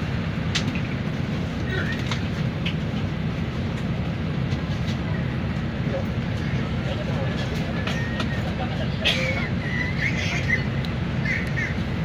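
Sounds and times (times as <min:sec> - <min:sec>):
people talking: 0:05.8 - 0:10.6.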